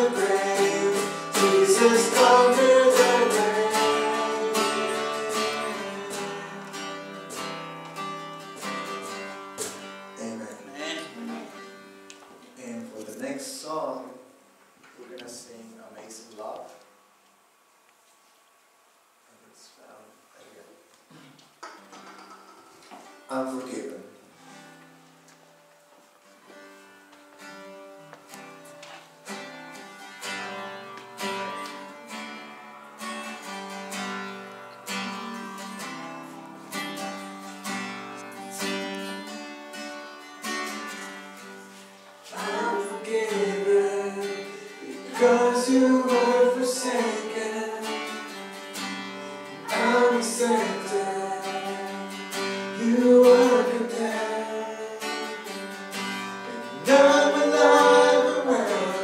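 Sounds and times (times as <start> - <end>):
voices singing: 0.0 - 6.8, 42.2 - 48.2, 49.4 - 55.4, 56.5 - 59.0
strummed acoustic guitar: 0.0 - 12.1, 21.6 - 25.7, 26.4 - 59.0.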